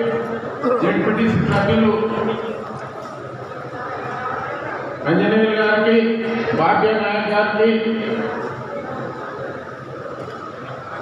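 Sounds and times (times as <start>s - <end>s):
large room background noise: 0.0s - 11.0s.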